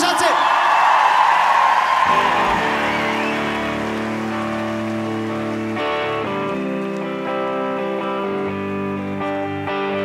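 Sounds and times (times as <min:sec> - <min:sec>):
electric guitars ringing chords: 0:02.1 - 0:10.0.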